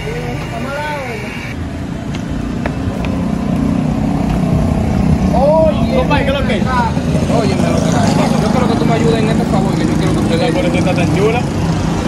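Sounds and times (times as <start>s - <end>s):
low rumble of street noise: 0.0s - 12.0s.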